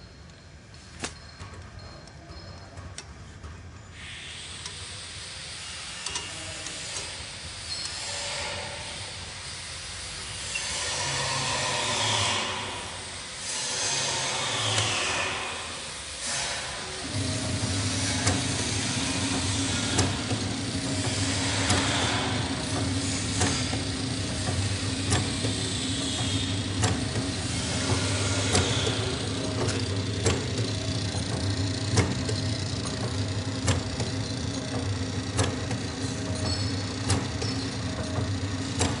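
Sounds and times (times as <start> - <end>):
packaging machine motor hum: 16.9 - 39.0
machine clicking: 19.2 - 39.0.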